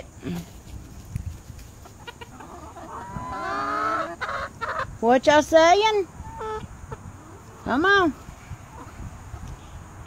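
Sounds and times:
chickens clucking: 0.0 - 10.0
chicken drawn-out call: 1.8 - 4.9.

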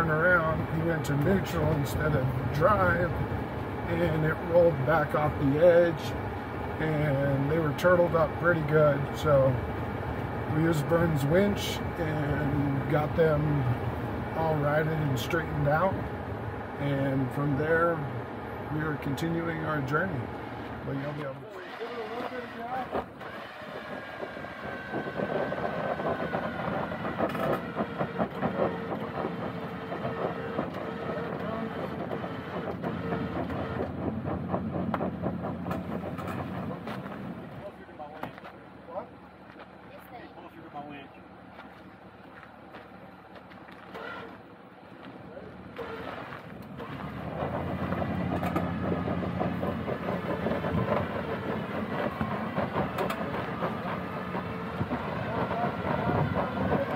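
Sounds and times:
winch motor whirring and rattling: 18.7 - 37.8, 43.7 - 44.6, 45.7 - 56.9.

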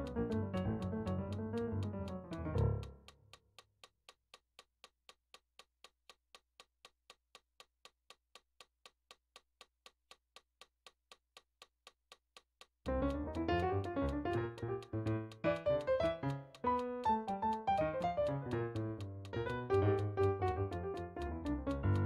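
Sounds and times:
piano playing atonal chords: 0.0 - 2.9, 12.9 - 22.0
metronome clicking: 0.0 - 4.9, 11.1 - 22.0.

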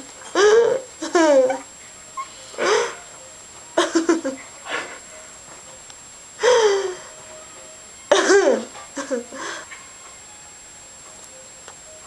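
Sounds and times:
young woman laughing: 0.2 - 1.7, 3.8 - 5.0, 8.1 - 9.6.

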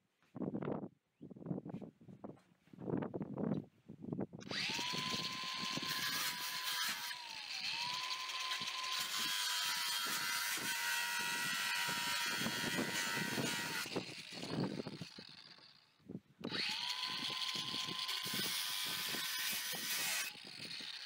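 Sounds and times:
angle grinder cutting metal: 4.4 - 21.0.

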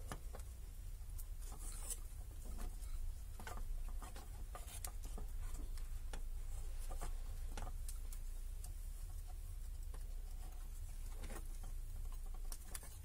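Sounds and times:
fingers handling thin wire: 0.0 - 13.0
low steady hum: 0.0 - 13.0.

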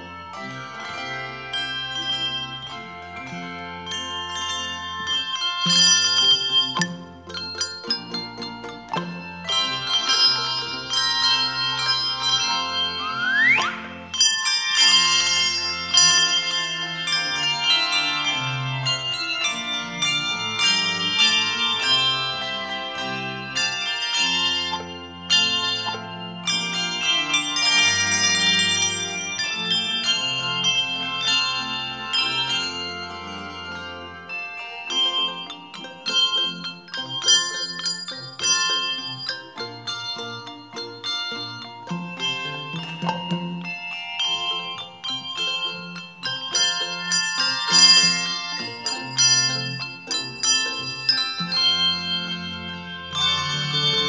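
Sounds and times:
handbell chords ringing: 0.0 - 54.0.

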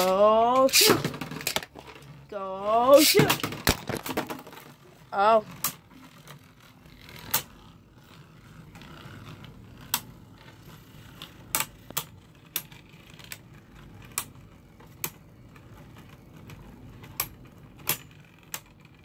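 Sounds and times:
plastic toy parts clicking: 0.0 - 2.0.

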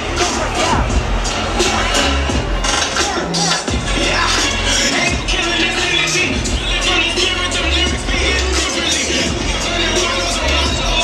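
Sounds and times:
bass-heavy music over loudspeakers: 0.0 - 11.0.

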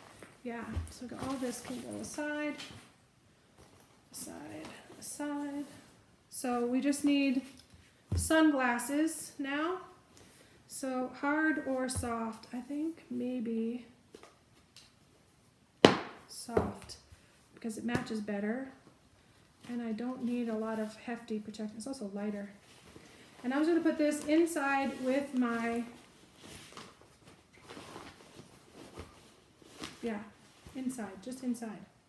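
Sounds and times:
fabric bag rustling: 22.5 - 31.0.

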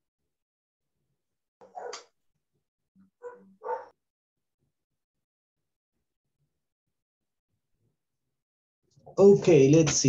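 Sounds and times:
dog barking: 1.6 - 2.2, 3.2 - 4.0.

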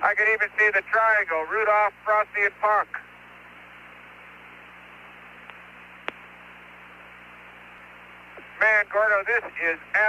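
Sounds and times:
radio hiss with low hum: 0.0 - 10.0.

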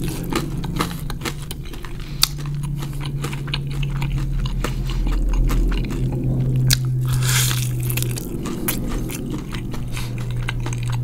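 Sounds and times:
chewing crispy fried chicken: 0.0 - 11.0
low steady hum: 0.0 - 11.0.

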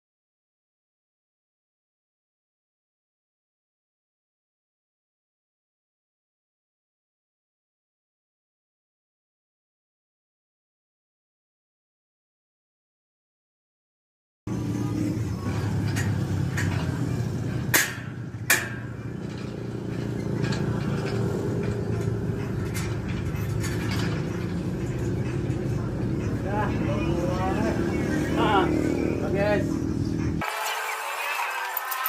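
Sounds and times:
low engine-like hum: 14.5 - 30.4
faint voices: 14.5 - 32.0.

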